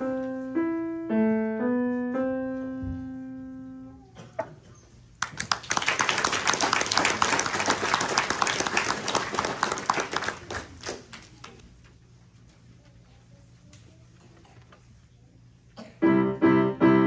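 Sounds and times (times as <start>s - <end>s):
audience applauding: 5.2s - 11.6s.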